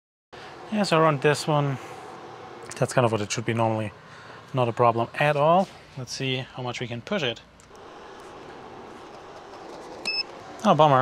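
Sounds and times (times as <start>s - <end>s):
inverter fan whirring: 0.4s - 11.0s.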